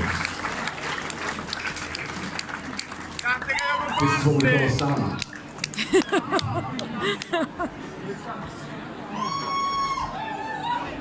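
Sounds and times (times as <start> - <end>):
audience applauding: 0.0 - 7.4.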